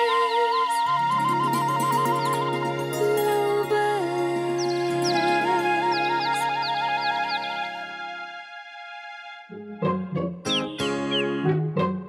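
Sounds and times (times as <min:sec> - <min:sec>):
bamboo flute trill: 0:00.0 - 0:08.9
held orchestral chords: 0:01.0 - 0:12.0.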